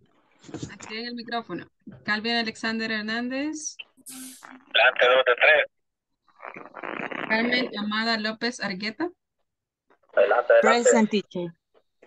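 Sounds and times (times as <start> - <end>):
person talking over video call: 0.5 - 5.8, 10.1 - 11.3.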